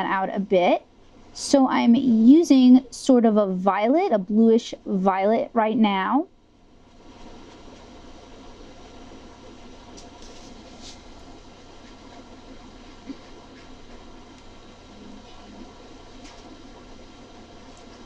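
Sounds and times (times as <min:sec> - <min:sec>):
background hiss and hum: 0:00.0 - 0:18.0.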